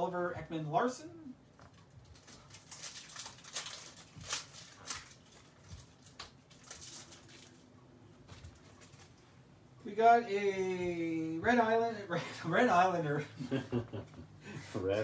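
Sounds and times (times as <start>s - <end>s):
wrapper being torn open: 1.7s - 7.7s.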